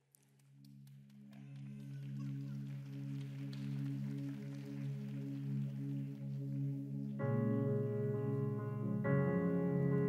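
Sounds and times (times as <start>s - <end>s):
soft slow band music: 2.8s - 10.0s.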